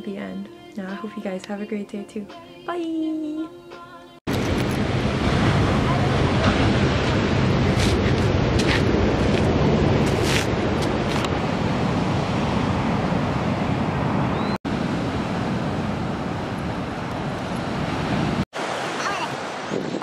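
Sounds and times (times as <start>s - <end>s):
ocean surf: 4.3s - 20.0s
wind buffeting microphone: 19.3s - 20.0s.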